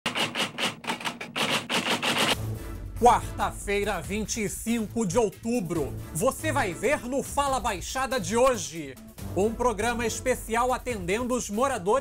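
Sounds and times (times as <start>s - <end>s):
typewriter keys clacking: 0.1s - 2.4s.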